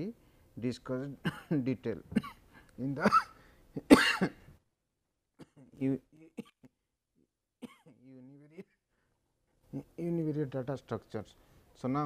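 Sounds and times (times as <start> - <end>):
man coughing: 1.2 - 4.5, 5.4 - 6.8, 7.6 - 8.8
man clearing his throat: 3.0 - 4.4, 5.4 - 6.8, 7.6 - 8.8.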